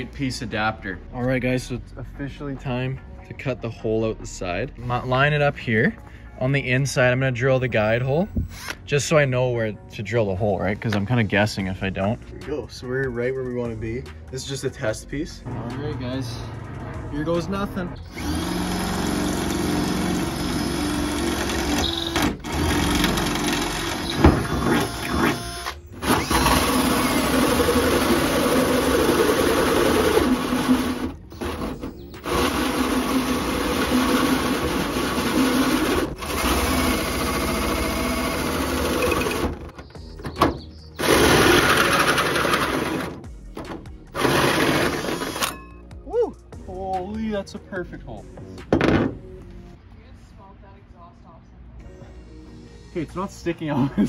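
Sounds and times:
cordless drill cutting through steel: 8.4s - 8.8s, 18.0s - 39.4s, 41.0s - 43.1s, 44.2s - 45.6s.

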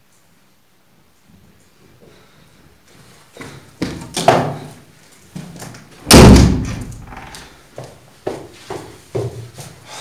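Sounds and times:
footsteps walking: 6.8s - 10.0s.

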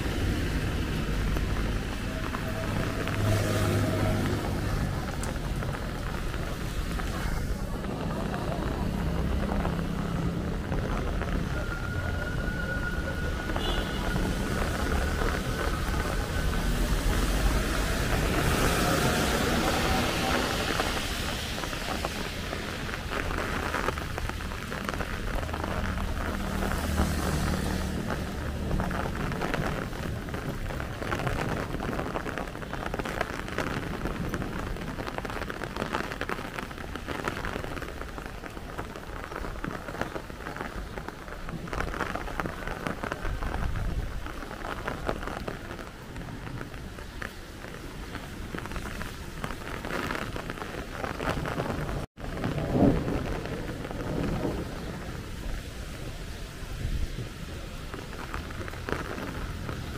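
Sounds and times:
rain falling on wet street: 0.0s - 59.9s
traffic rumble on wet road: 0.0s - 59.9s.

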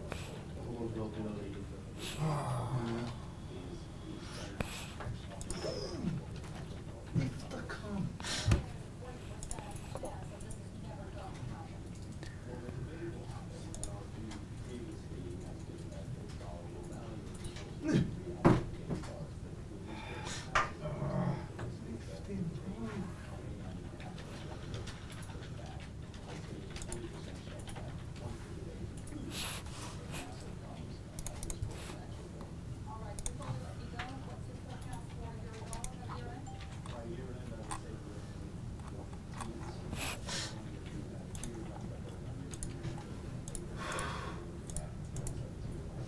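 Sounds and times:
low room hum: 0.0s - 46.0s.

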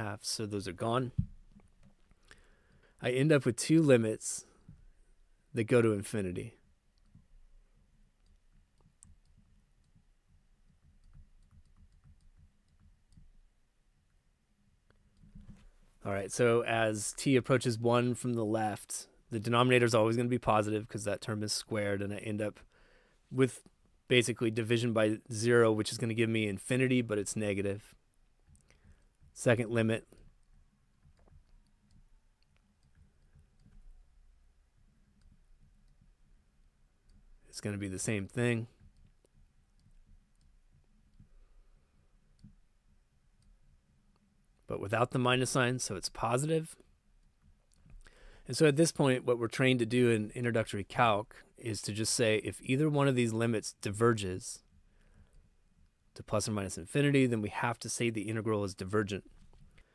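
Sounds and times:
faint room hum: 0.0s - 59.9s.

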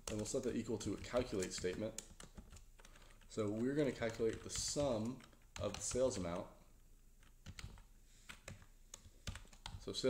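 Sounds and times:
computer keyboard typing: 0.0s - 6.5s, 7.2s - 9.9s.

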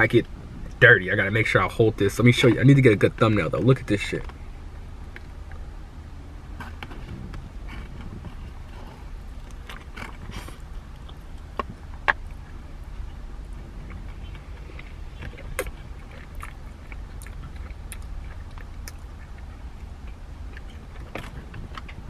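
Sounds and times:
low rumble in car cabin: 0.0s - 22.0s
person chewing food: 6.6s - 22.0s
wet mouth clicks: 13.9s - 19.5s.

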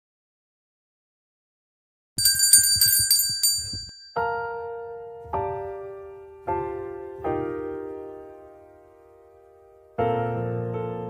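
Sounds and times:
small handbell ringing: 2.2s - 4.2s.

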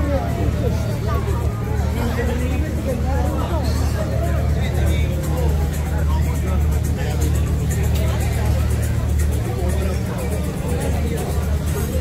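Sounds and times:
chatter of many voices: 0.0s - 12.0s
steady low rumble: 0.0s - 12.0s.

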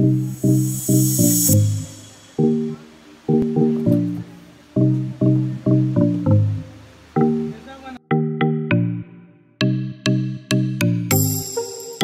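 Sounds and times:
hissing swoosh effect: 0.0s - 3.4s
plucked guitar-like music: 2.4s - 7.7s.

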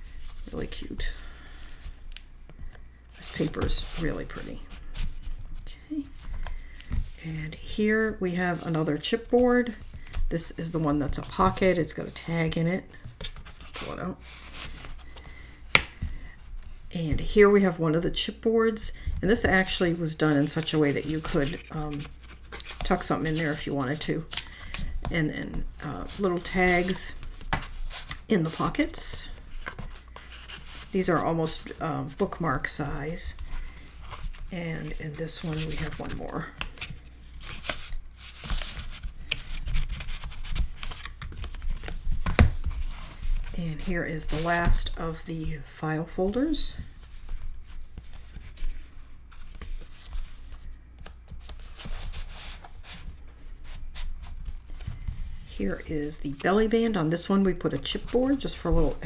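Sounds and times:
paper rustling: 19.3s - 32.5s, 33.2s - 45.0s, 46.3s - 59.0s.

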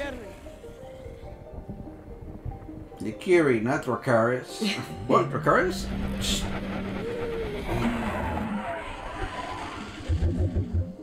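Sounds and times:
faint gliding tones: 4.8s - 11.0s.

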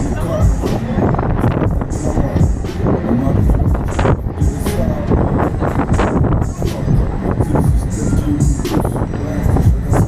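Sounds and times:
loud ride music: 0.0s - 10.0s
wind rumble on microphone: 0.0s - 10.0s.

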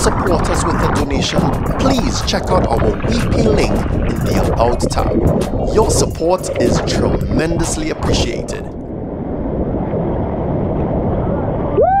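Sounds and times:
waterfall rushing: 0.0s - 8.6s.

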